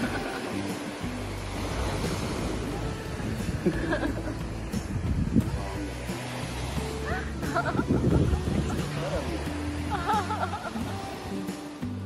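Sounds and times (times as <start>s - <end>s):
people laughing: 0.0s - 0.6s, 3.6s - 4.4s, 7.0s - 11.0s
surf: 0.0s - 12.0s
wind rumbling on microphone: 1.0s - 11.0s.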